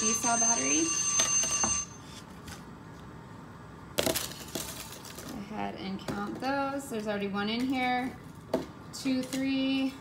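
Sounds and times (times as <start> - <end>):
timer alarm ringing: 0.0 - 2.0.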